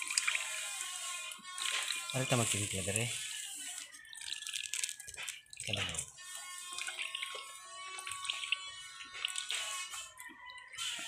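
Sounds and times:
liquid trickling and dripping: 0:00.0 - 0:03.0, 0:03.6 - 0:10.3.

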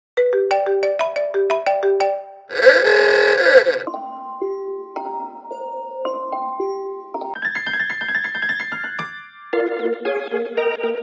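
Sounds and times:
harsh noisy blast: 0:02.5 - 0:03.9
phone alarm tone: 0:02.5 - 0:03.9.

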